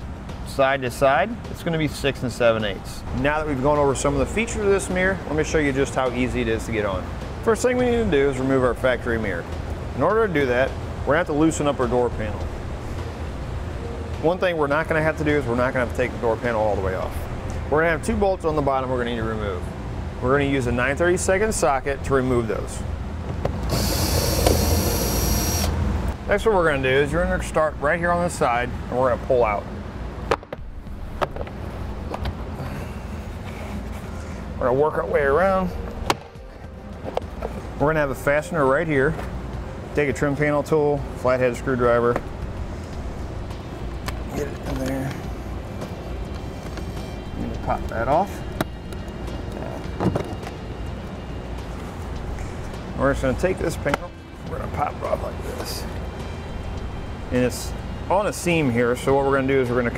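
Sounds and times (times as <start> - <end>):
steady low hum: 0.0 - 59.9
cordless drill motor whining: 23.7 - 25.8
drill click: 23.7 - 25.8.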